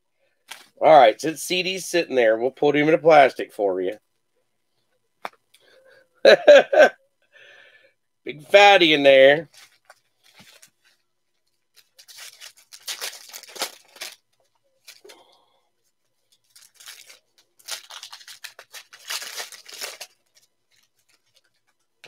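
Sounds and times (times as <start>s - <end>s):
foil wrappers tearing and crinkling: 11.7s - 15.2s, 16.2s - 22.0s.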